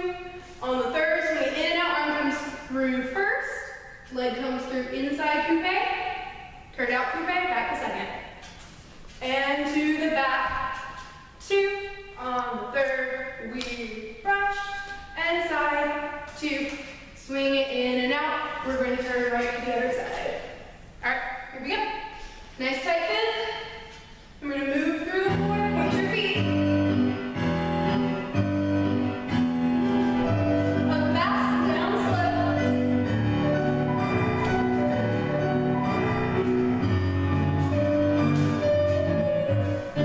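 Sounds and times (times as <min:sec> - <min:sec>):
instrumental music with bass line: 0:25.3 - 0:40.0.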